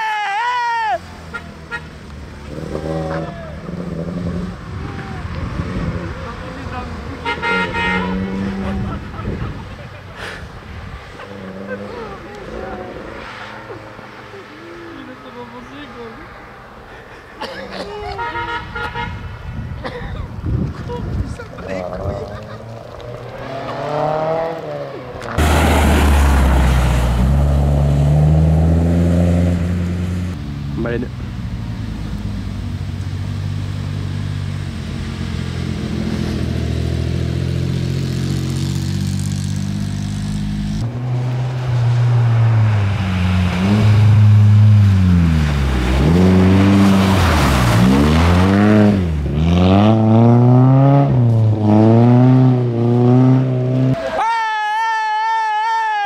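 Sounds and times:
engine revving up and down: 0:02.4 - 0:04.7, 0:07.4 - 0:09.0, 0:21.7 - 0:30.4, 0:35.1 - 0:54.0
rally car engine accelerating: 0:33.3 - 0:54.1.

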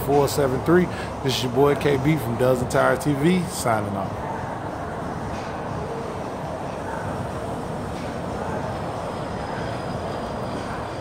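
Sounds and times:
faint high whine: 0:04.2 - 0:11.0.

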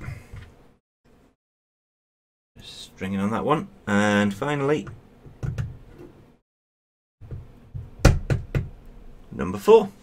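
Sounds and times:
plastic knocking on wooden desk: 0:07.2 - 0:08.7.

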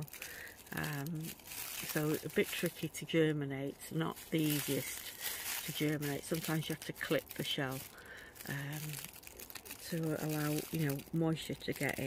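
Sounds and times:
person saying um: 0:00.0 - 0:09.1
plastic bag crinkling: 0:00.0 - 0:12.0.

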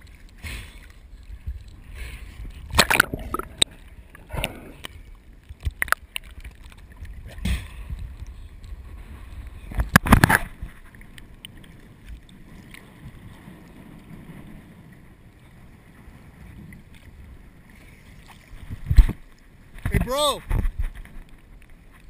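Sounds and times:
water sloshing against camera: 0:00.0 - 0:14.4
sea water splashing: 0:00.0 - 0:22.0
waves lapping: 0:00.0 - 0:22.0.

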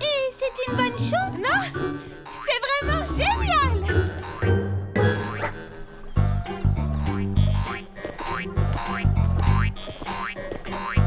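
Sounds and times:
bouncy background music: 0:00.1 - 0:11.0.

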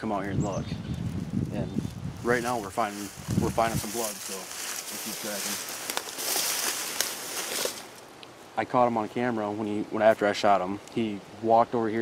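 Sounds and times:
dry weeds rustling: 0:00.8 - 0:08.6.

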